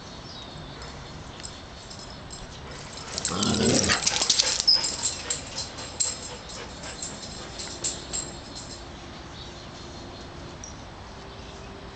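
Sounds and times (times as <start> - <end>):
sharp clicks and rattles: 1.4 - 8.8
dog low wavering vocal sound: 3.1 - 5.2.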